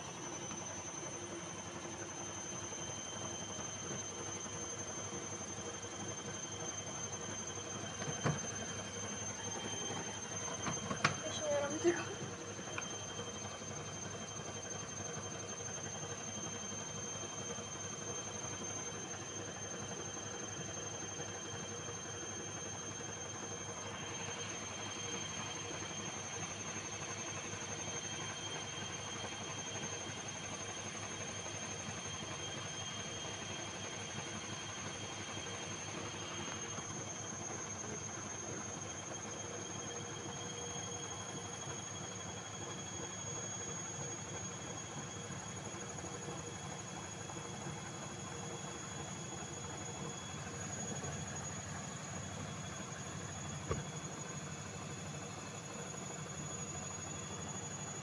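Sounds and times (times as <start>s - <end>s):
washing machine running with whine: 0.0s - 58.0s.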